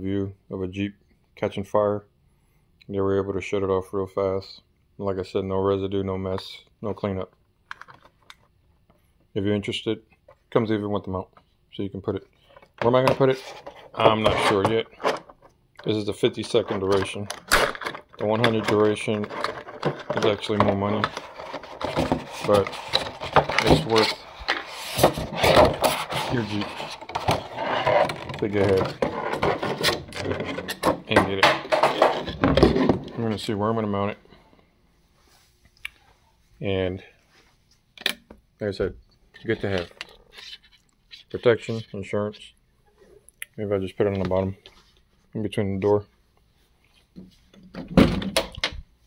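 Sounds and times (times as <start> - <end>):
cardboard scraping and rustling: 18.1 - 33.4.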